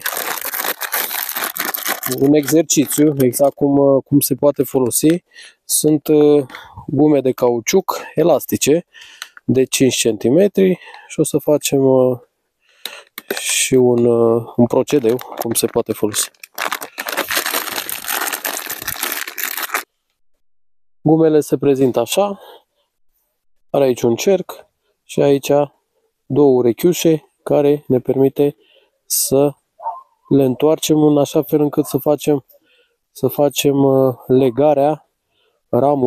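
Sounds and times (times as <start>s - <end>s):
plastic bag crinkling: 0.0s - 3.5s, 14.7s - 19.9s.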